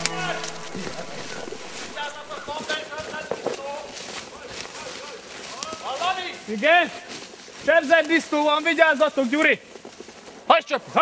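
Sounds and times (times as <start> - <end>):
men shouting: 0.0 - 2.6.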